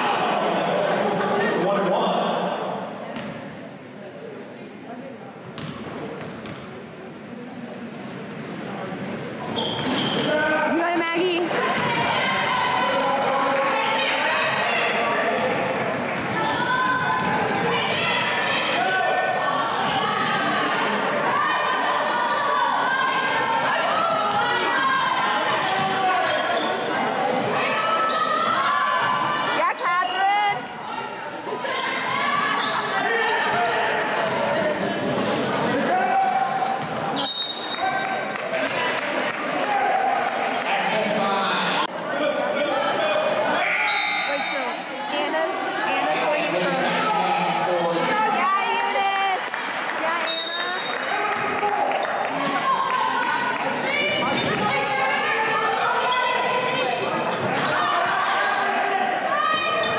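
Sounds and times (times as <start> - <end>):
chatter and calls of people: 0.0 - 59.9.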